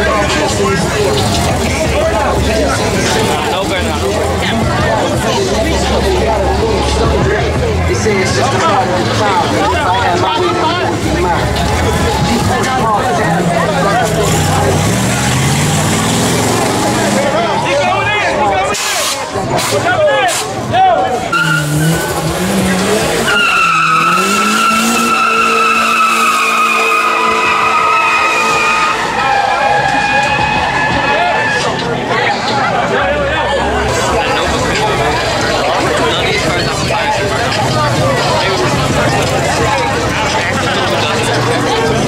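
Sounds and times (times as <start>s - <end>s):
car engine revving: 0.0s - 20.0s, 21.2s - 31.8s, 33.5s - 42.0s
crowd voices: 0.0s - 42.0s
tire squeal: 21.2s - 32.3s.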